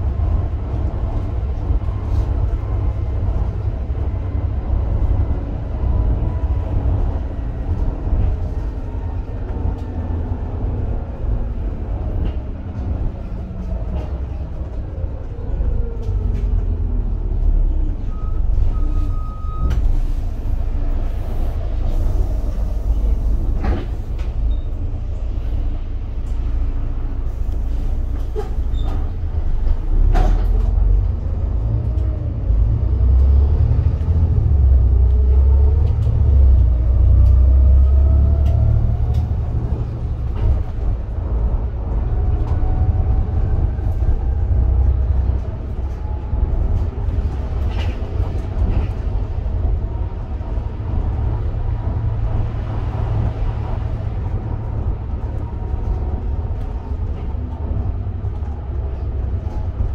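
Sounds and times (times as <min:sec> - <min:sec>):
bus diesel engine and driveline whine: 0:00.0 - 0:59.9
heavy rumble: 0:00.0 - 0:59.9
bus body knocks and rattles: 0:23.4 - 0:24.6, 0:28.1 - 0:30.8.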